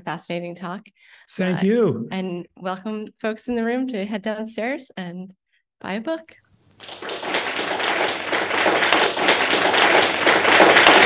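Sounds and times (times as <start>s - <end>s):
crowd applauding: 6.8s - 11.0s.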